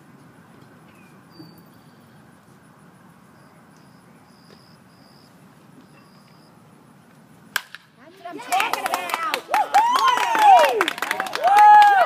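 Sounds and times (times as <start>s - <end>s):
baseball bat hitting ball: 7.5s - 7.9s.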